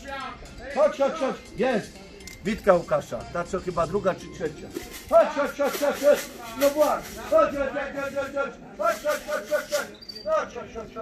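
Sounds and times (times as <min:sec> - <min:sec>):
grain rattling in a tin: 0:04.7 - 0:08.2, 0:08.8 - 0:09.9.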